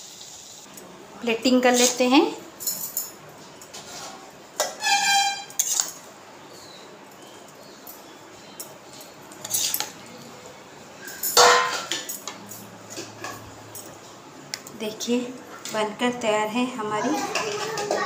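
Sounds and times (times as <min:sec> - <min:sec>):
spatula scraping in a pan: 0:03.7 - 0:06.0, 0:09.4 - 0:09.9.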